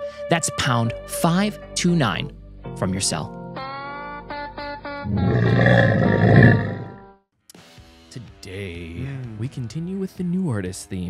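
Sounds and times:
camel bellowing: 5.1s - 7.0s.

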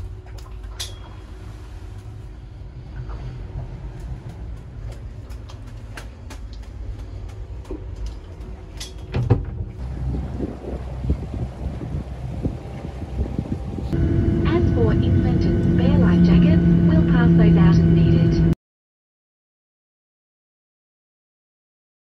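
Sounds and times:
low rumble: 0.0s - 18.6s
jet engine drone: 9.8s - 18.6s
voices in cabin: 14.0s - 18.6s.

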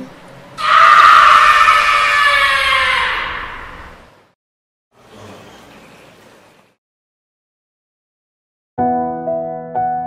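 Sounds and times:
loud high-pitched scream: 0.6s - 4.1s.

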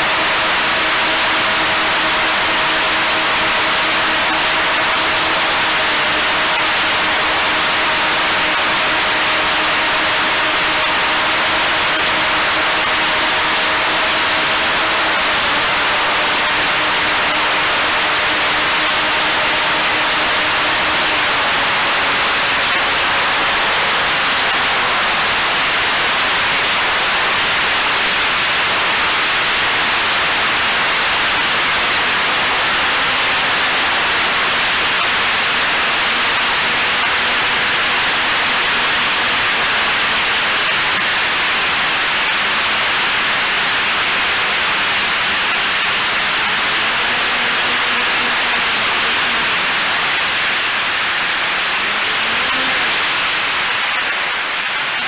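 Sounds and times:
loud steady hiss: 0.0s - 55.0s.

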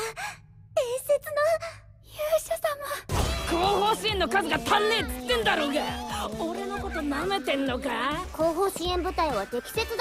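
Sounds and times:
woman speaking: 0.8s - 10.0s.

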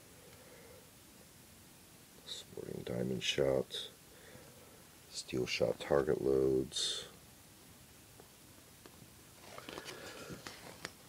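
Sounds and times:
paper catalog pages turning: 9.4s - 11.0s.

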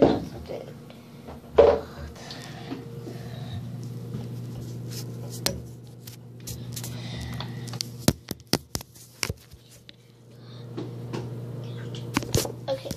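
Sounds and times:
steady low hum: 0.0s - 12.9s.

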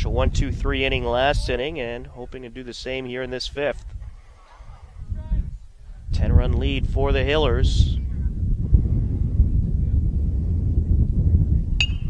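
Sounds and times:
wind rumble on microphone: 0.0s - 12.0s
metal bat hitting ball: 11.8s - 12.0s.

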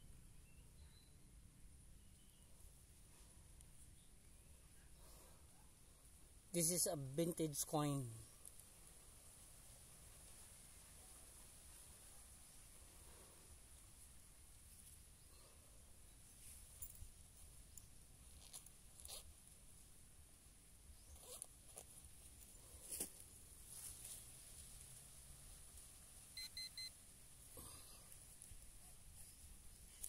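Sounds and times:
rustles and clicks in soil: 7.4s - 30.0s
metal detector beeps: 26.4s - 26.9s.

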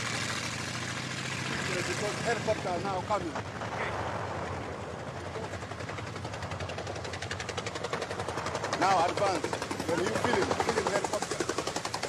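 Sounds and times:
vehicle engine rumbling: 0.0s - 12.0s
rapid even track clatter: 5.4s - 12.0s.

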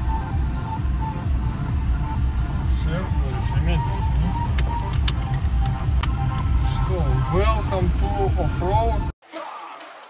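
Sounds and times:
car driving on rough road: 0.0s - 9.1s
faint music: 0.0s - 9.1s.

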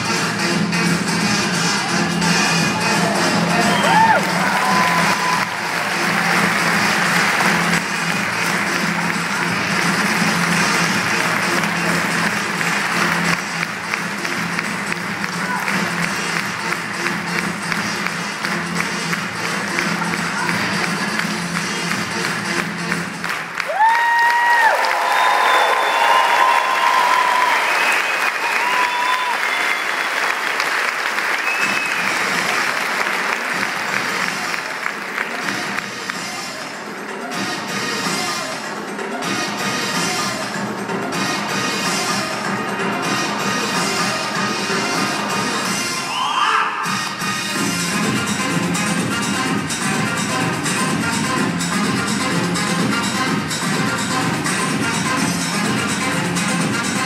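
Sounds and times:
loud upbeat music: 0.0s - 57.0s
audience applause: 3.0s - 36.3s.

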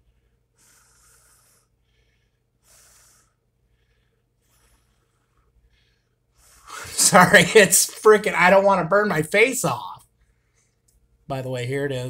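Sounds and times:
faint short breaths: 0.0s - 6.9s.

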